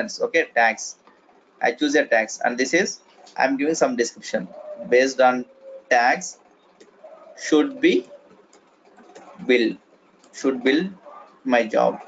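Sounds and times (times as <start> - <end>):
man speaking a word: 7.4 - 8.1.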